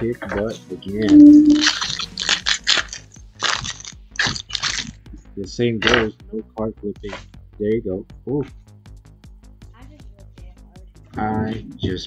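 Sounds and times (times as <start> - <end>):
foil wrapper crinkling and tearing: 1.5 - 5.0.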